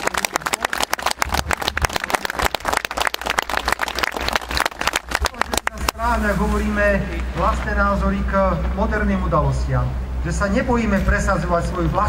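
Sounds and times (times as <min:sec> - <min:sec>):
crowd applauding: 0:00.0 - 0:06.1.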